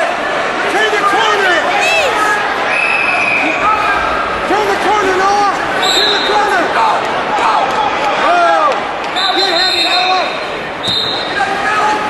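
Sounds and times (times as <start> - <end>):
crowd and coaches shouting: 0.0 - 12.0
whistle blowing: 2.7 - 3.6, 5.8 - 6.4, 9.2 - 11.4.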